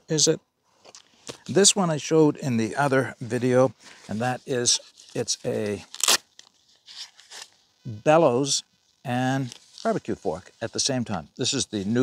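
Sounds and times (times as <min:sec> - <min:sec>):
faint rustles and scrapes: 0:03.0 - 0:07.8, 0:08.9 - 0:12.0.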